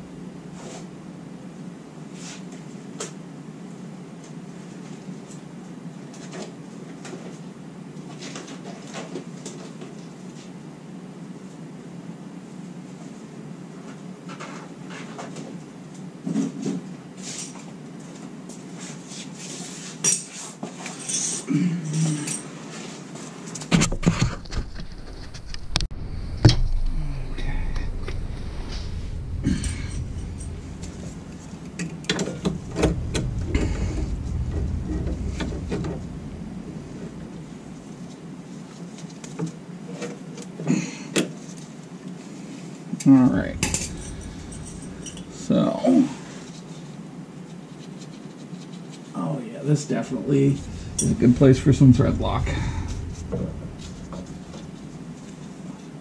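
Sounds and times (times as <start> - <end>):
low rumble: 0.0 - 0.8, 24.4 - 38.8, 43.1 - 46.6, 49.8 - 55.9.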